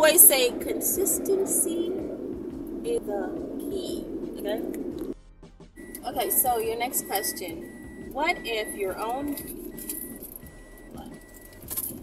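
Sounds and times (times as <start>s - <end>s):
faint high-pitched tone: 5.8s - 11.6s.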